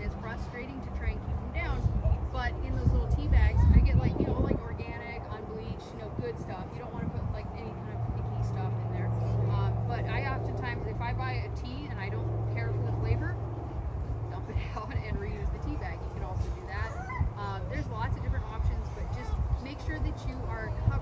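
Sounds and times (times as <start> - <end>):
people talking indistinctly: 0.0 - 21.0
steady low hum: 0.0 - 21.0.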